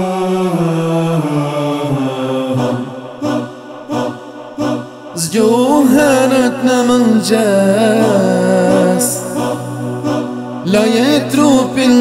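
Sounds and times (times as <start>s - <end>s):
man chanting: 4.6s - 12.0s.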